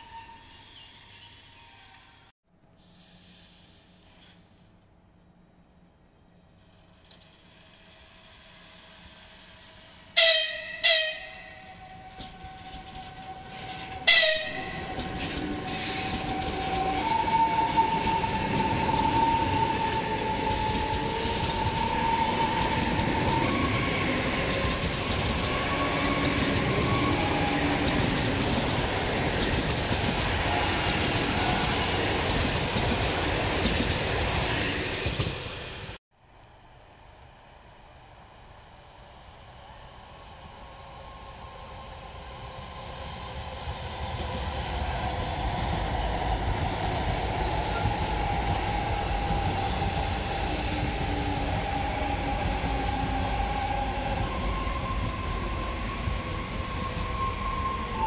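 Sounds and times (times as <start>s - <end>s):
train wheels rushing on rails: 6.6s - 36.0s, 39.8s - 58.0s
train horn blasts: 10.1s - 12.8s, 13.6s - 14.8s.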